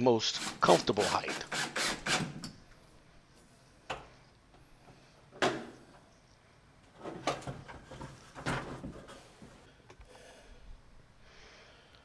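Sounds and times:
soft knocks and rattles: 0:06.9 - 0:09.6.

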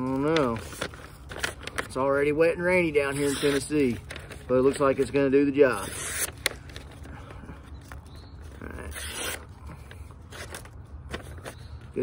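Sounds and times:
knife slicing paper: 0:02.9 - 0:06.5, 0:08.8 - 0:09.5.

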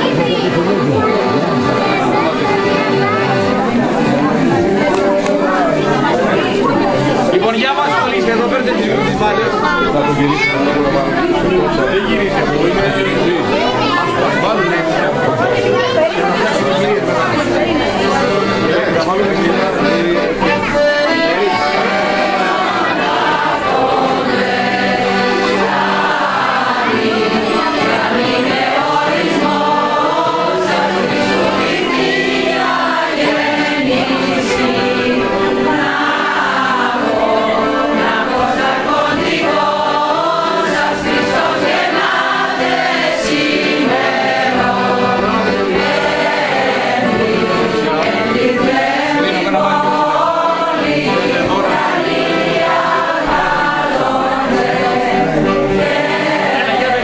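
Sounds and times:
women's choir singing a hymn: 0:00.0 - 0:09.6, 0:10.6 - 0:57.0
accordion: 0:00.0 - 0:57.0.

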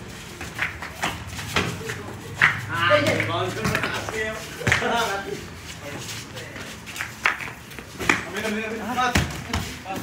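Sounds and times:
ball bouncing on concrete: 0:00.3 - 0:05.0, 0:06.5 - 0:10.0.

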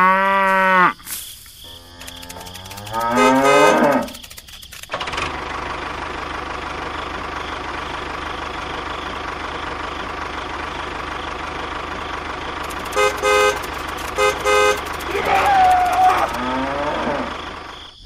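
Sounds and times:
cow mooing: 0:00.0 - 0:01.0, 0:01.7 - 0:04.2, 0:14.2 - 0:17.4
tractor engine running: 0:01.1 - 0:18.0.

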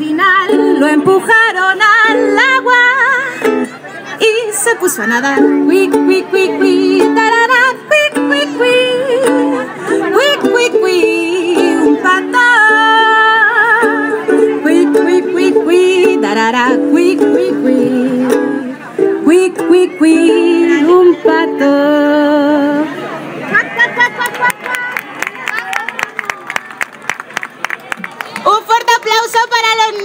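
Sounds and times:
woman singing: 0:00.0 - 0:03.6, 0:04.2 - 0:22.9
ukulele strumming: 0:00.0 - 0:22.6.

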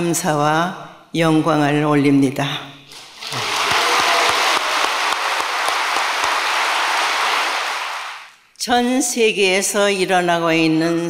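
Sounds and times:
audience applauding: 0:02.9 - 0:08.4.

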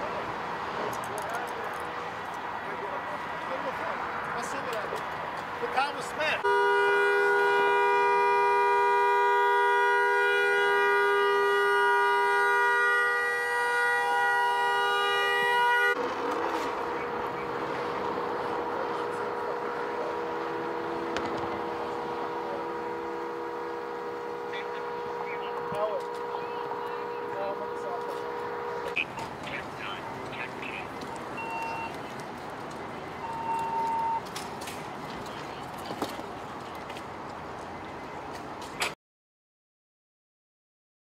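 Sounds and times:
two-note car horn: 0:06.4 - 0:16.0, 0:20.1 - 0:29.0, 0:33.2 - 0:34.2
noisy background: 0:15.9 - 0:38.9.

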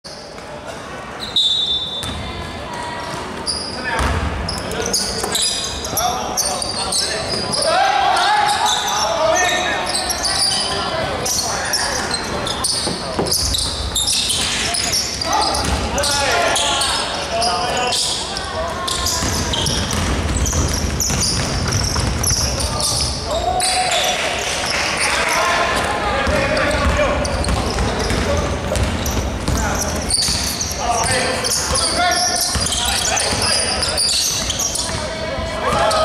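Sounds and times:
players calling out: 0:01.2 - 0:36.0
basketball bouncing on wooden court: 0:02.0 - 0:02.3, 0:04.0 - 0:04.5, 0:15.6 - 0:15.9, 0:18.9 - 0:23.2, 0:26.2 - 0:31.8, 0:34.3 - 0:35.1.

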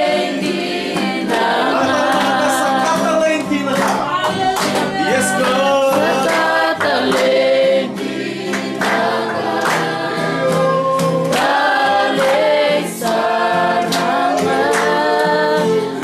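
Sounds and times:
congregation singing: 0:00.0 - 0:16.0
hand claps: 0:00.6 - 0:16.0.

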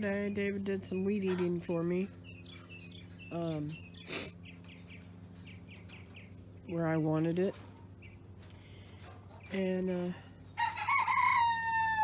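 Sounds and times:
rooster crowing: 0:10.6 - 0:12.0.

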